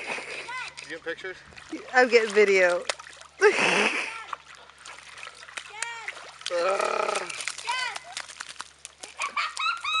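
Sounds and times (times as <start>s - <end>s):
paws squelching in mud: 4.3s - 9.8s.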